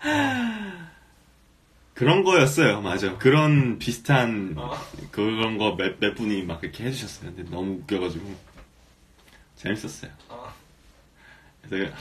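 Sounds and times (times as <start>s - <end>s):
man's breathy sigh: 0.0s - 1.1s.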